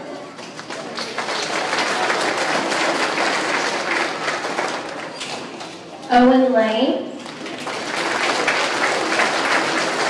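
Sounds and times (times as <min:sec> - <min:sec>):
audience applauding: 0:00.4 - 0:05.9, 0:07.3 - 0:10.0.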